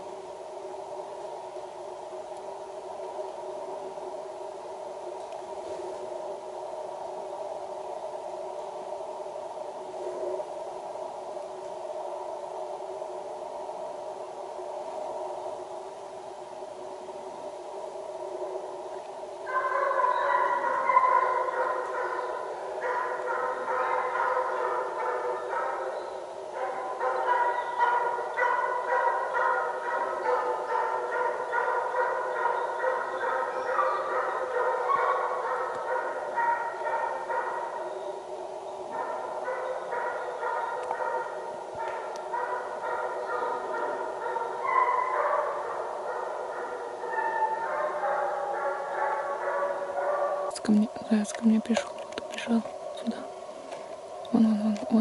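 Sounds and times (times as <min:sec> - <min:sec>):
hounds baying: 0:19.4 - 0:38.2, 0:38.8 - 0:50.5.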